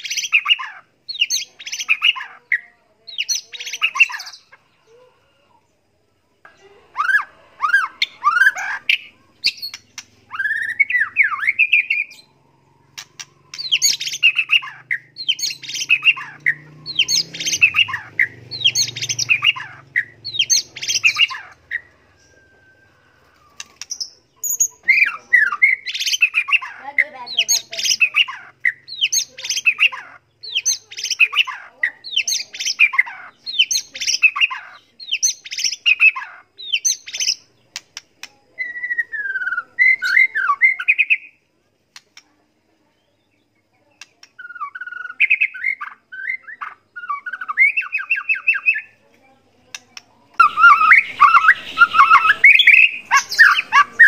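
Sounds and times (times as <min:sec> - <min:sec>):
songbird singing: 0:00.0 - 0:54.0.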